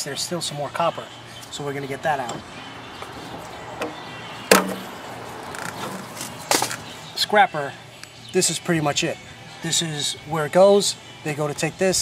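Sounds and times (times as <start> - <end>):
sharp metal bang ringing: 3.8 - 4.9.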